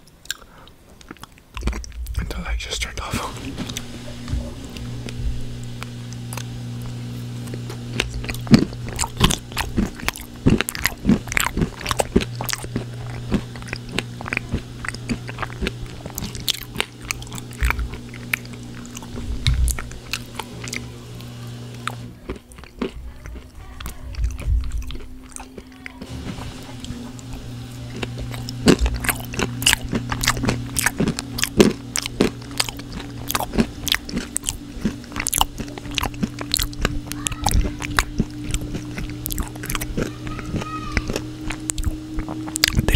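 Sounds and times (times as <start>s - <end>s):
chewing crunchy food: 0.0s - 42.9s.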